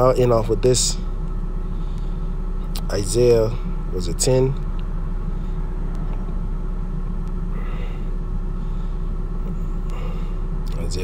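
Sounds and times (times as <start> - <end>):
faint constant hum: 0.0 - 11.0
low mechanical rumble: 0.0 - 11.0.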